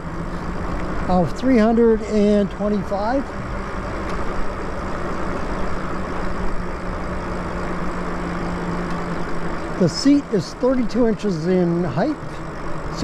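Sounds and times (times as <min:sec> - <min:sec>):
low motor hum: 0:00.0 - 0:13.0
tyres rolling on asphalt: 0:00.0 - 0:13.0.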